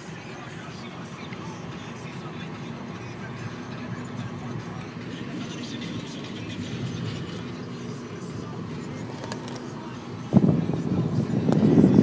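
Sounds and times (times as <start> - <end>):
low rumble inside a car: 0.0 - 12.0
phone rustling and rubbing: 9.0 - 9.8.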